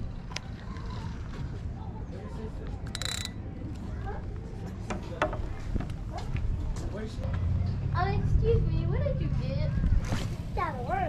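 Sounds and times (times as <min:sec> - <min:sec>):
faint voices: 0:00.0 - 0:11.0
fishing reel clicks: 0:02.9 - 0:03.4
fishing reel rasp: 0:02.9 - 0:03.4.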